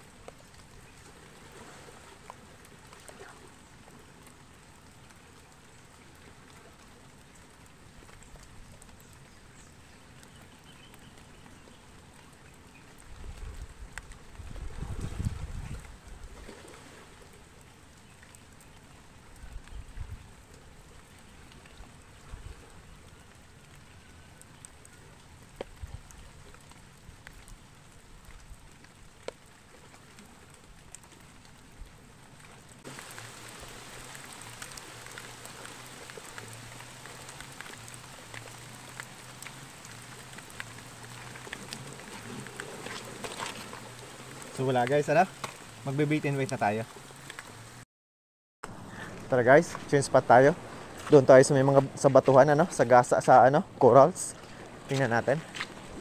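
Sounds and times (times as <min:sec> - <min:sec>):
rain falling: 0:00.0 - 0:47.8, 0:48.7 - 0:56.0
raindrop ticks: 0:02.2 - 0:14.4, 0:17.2 - 0:47.8
low rumbles: 0:48.6 - 0:56.0.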